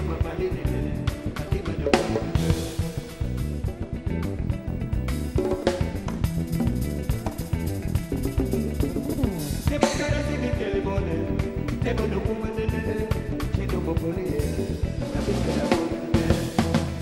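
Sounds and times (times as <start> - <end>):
bass line: 0.0 - 17.0
drum kit and percussion: 0.0 - 17.0
jazz fusion band playing: 0.0 - 17.0.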